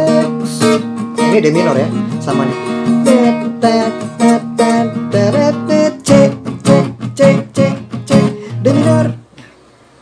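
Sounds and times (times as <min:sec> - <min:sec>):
acoustic guitar strumming: 0:00.0 - 0:09.6.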